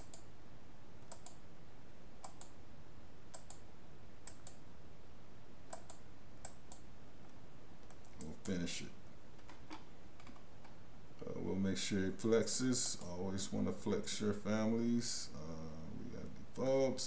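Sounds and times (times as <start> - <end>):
low steady hiss: 0.0 - 17.0
mouse and keyboard clicks: 1.0 - 1.4, 2.2 - 2.6, 3.3 - 3.6, 4.2 - 4.6, 5.7 - 6.8, 9.4 - 10.8
person speaking: 8.0 - 9.8, 11.2 - 17.0.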